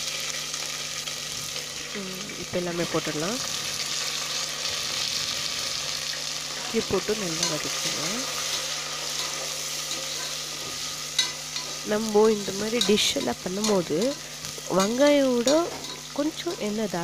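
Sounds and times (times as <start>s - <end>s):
onions sizzling in hot oil: 0.0s - 17.0s
metal spatula stirring: 6.6s - 16.6s.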